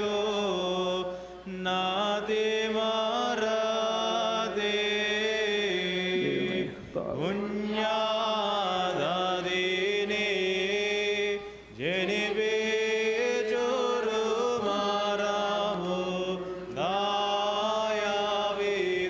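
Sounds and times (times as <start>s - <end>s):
single voice chanting: 6.1s - 7.4s.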